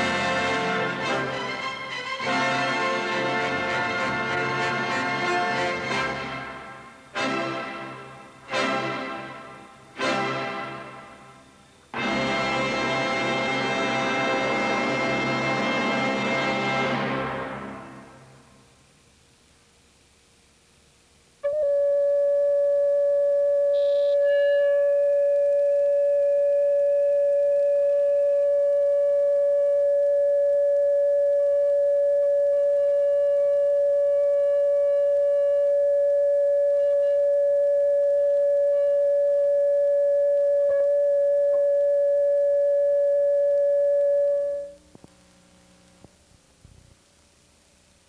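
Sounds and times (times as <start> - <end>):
steady test tone: 16.9 - 46.3.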